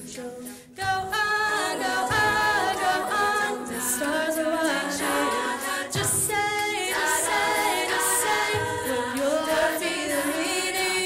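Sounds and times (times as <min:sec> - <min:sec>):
female a cappella group singing: 0:00.0 - 0:11.0.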